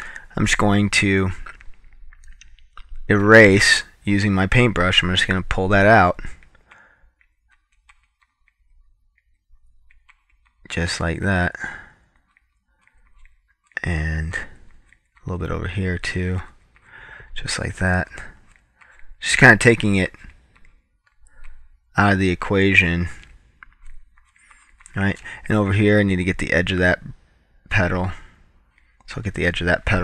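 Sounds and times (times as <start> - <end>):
person talking: 0.0 - 1.7, 2.9 - 6.4, 10.7 - 11.9, 13.7 - 20.4, 21.4 - 23.3, 24.8 - 28.3, 29.1 - 30.0.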